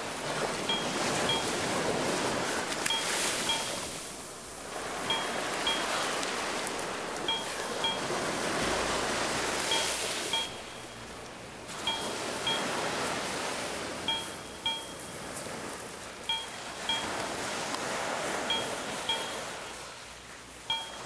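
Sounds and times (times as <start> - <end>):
surf washing onto beach: 0.0 - 21.0
short high pings: 0.7 - 1.6, 2.8 - 4.2, 5.0 - 6.1, 7.2 - 8.2, 9.6 - 12.8, 14.1 - 15.2, 16.3 - 17.2, 18.5 - 19.6, 20.7 - 21.0.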